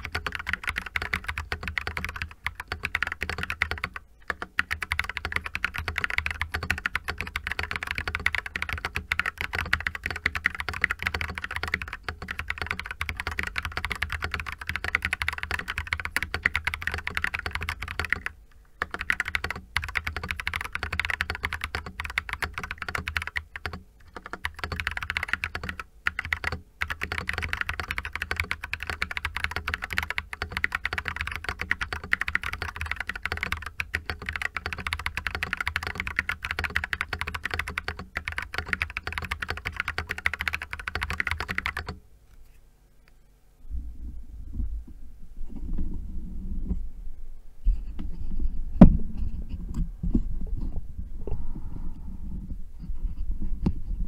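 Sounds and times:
fast typing on mechanical keyboard: 0.0s - 42.0s.

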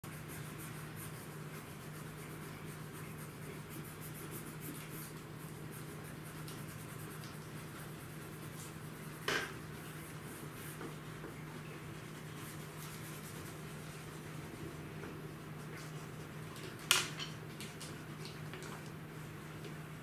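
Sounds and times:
crayon scratching on paper: 0.0s - 14.5s
steady low hum: 0.0s - 20.0s.

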